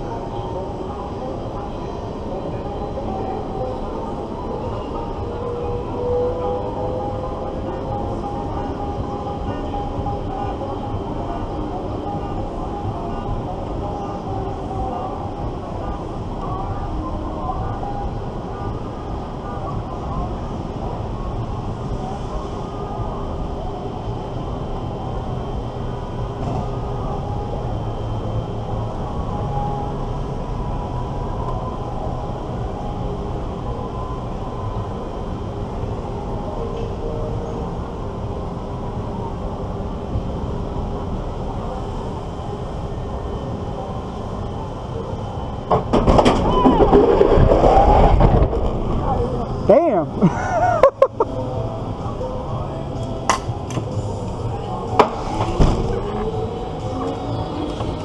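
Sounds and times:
wind and machinery hum: 0.0 - 58.0
loud rush of wind: 42.0 - 50.3.

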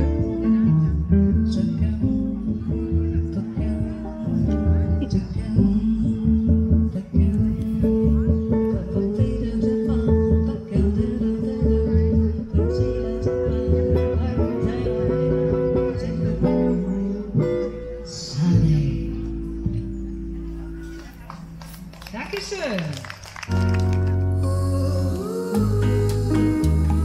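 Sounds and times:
upright double bass: 0.0 - 21.6, 23.4 - 27.0
acoustic guitar: 0.0 - 21.8, 23.5 - 27.0
woman singing: 1.1 - 19.0, 24.2 - 27.0.

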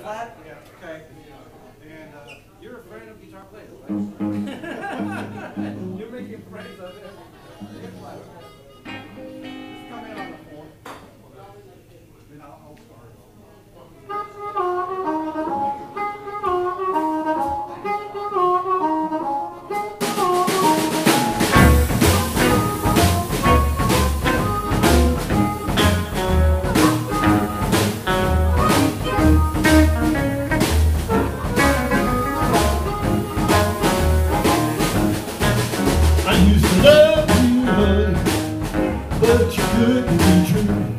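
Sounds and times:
harmonica lines: 8.0 - 10.4, 14.1 - 38.1
electric guitars: 8.9 - 10.4, 19.8 - 40.9
indistinct talking: 17.6 - 40.9
drum kit steady beat: 19.9 - 40.9
walking upright bass: 20.0 - 40.9.

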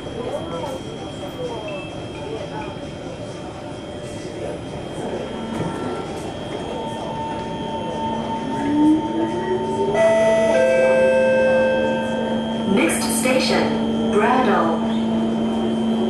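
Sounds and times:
metro train running on rails: 0.0 - 16.0
steady higher tones: 5.1 - 16.0.

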